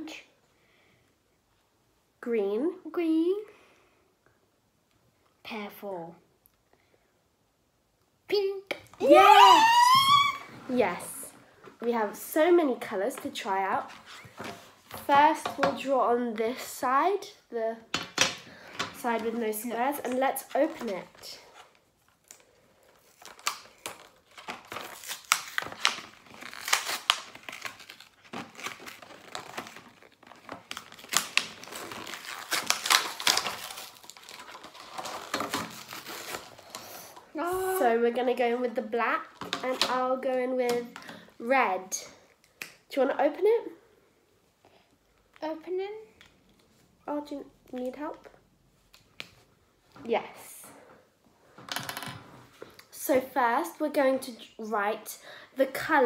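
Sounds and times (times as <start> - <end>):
card packaging tearing and crinkling: 21.7 - 37.1.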